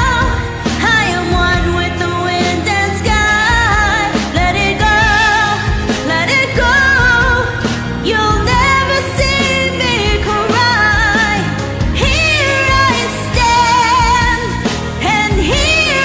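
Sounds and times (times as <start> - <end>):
karaoke backing track: 0.0 - 16.0
women singing pop ballad duet: 0.0 - 16.0.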